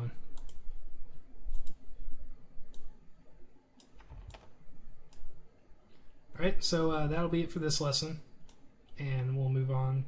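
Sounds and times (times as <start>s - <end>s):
computer mouse clicking: 0.3s - 1.9s, 2.6s - 2.9s, 3.7s - 4.5s, 5.1s - 5.3s, 8.4s - 9.0s.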